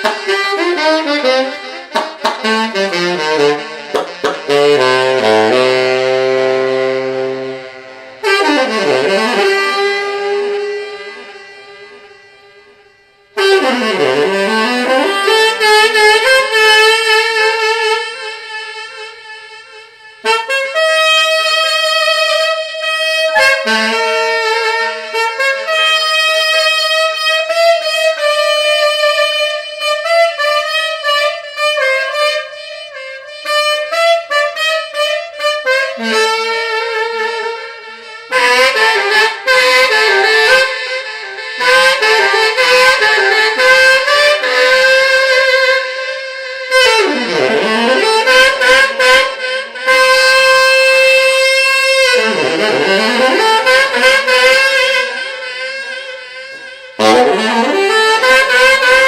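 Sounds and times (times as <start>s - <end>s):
tenor saxophone solo: 0.0s - 59.0s.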